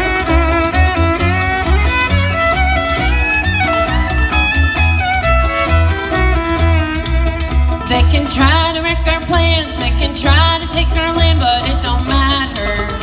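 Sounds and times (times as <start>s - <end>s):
banjo: 0.0s - 13.0s
fiddle melody: 0.0s - 13.0s
upright bass: 0.0s - 13.0s.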